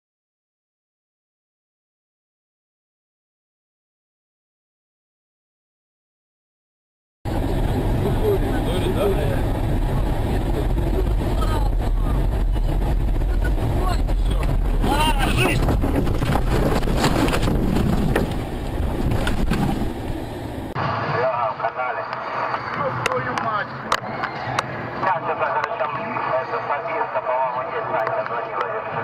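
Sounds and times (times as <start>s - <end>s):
car rumbling through snow: 7.3s - 21.0s
people's voices: 7.5s - 16.0s, 20.8s - 29.0s
knocks and jolts: 14.5s - 20.1s.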